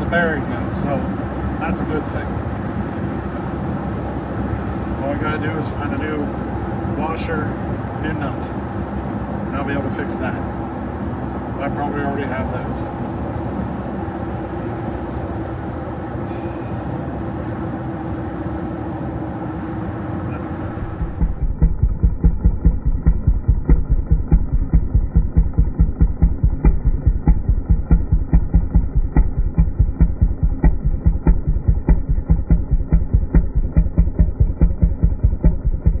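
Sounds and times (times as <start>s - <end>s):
truck cab road noise: 0.0s - 36.0s
muffled rhythmic thumping: 20.3s - 36.0s.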